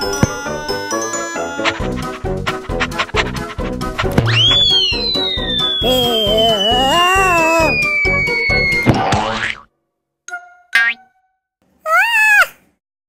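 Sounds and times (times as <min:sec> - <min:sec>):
cartoon background music: 0:00.0 - 0:09.7, 0:10.3 - 0:11.3
cartoon cry: 0:00.1 - 0:01.8, 0:05.6 - 0:09.1, 0:11.8 - 0:12.6
long falling whistle: 0:04.3 - 0:08.9.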